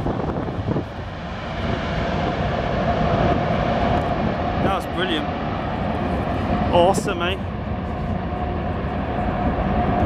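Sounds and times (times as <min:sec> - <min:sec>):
jet engine whine: 0:00.0 - 0:10.0
jet engines roaring: 0:00.0 - 0:10.0.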